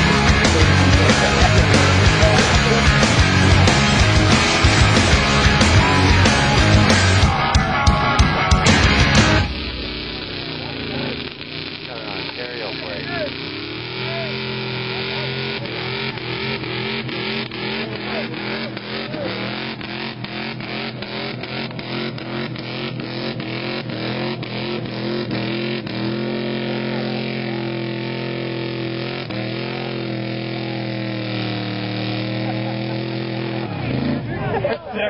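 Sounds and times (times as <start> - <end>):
truck engine at high revs: 0.0 - 35.0.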